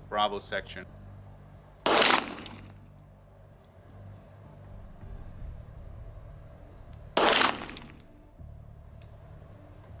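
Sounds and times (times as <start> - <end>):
pistol shot echoing: 1.8 - 2.7, 7.2 - 8.1.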